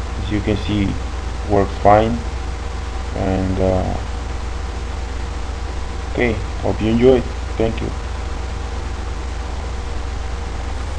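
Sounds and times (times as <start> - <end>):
microphone hiss with low hum: 0.0 - 10.9.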